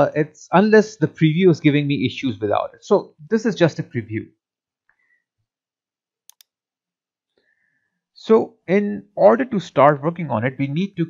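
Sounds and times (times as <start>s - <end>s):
computer mouse clicks: 6.3s - 6.6s.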